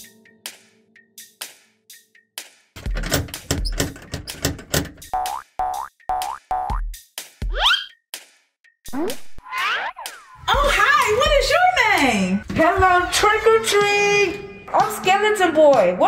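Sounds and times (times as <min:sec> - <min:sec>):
cartoon sound-effect music: 0:05.2 - 0:06.8, 0:07.5 - 0:07.9, 0:08.9 - 0:10.5.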